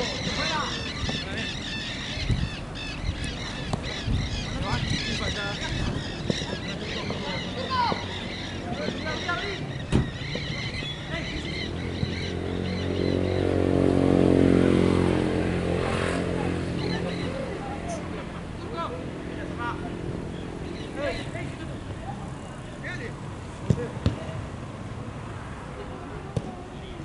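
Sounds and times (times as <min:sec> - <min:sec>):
vehicle engine passing: 0:00.0 - 0:23.1
football kicked: 0:23.7 - 0:24.2.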